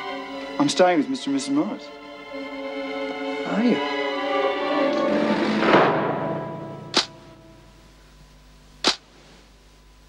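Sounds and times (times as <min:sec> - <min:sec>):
camera shutter click: 0:06.9 - 0:07.1.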